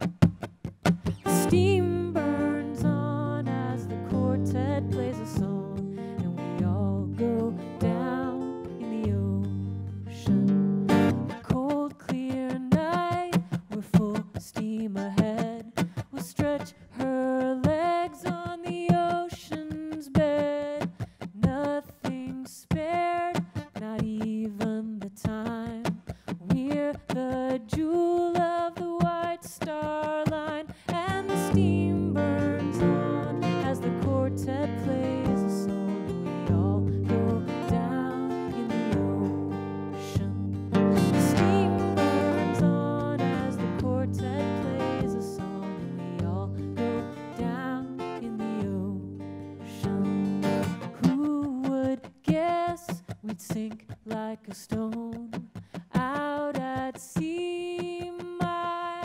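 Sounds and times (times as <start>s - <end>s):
strummed acoustic guitar: 0.0s - 59.0s
woman singing a sea shanty: 1.1s - 59.0s.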